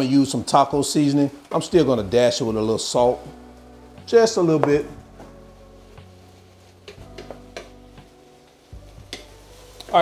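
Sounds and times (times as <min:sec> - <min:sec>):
faint sizzle of meat frying: 0:00.0 - 0:10.0
wooden spatula scraping frying pan: 0:04.5 - 0:10.0.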